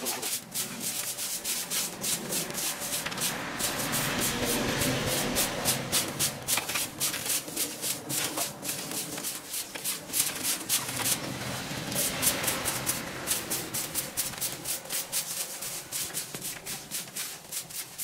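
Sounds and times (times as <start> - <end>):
brooms sweeping grass on earth: 0.0 - 18.0
rake scraping debris: 0.0 - 18.0.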